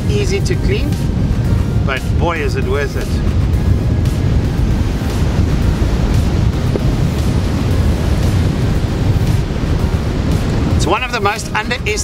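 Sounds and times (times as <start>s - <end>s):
wind buffeting microphone: 0.0s - 12.0s
surf breaking on rocks: 1.0s - 12.0s.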